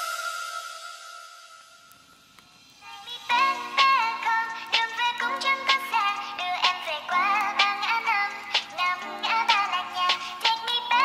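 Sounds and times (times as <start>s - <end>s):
music beat: 0.0s - 11.0s.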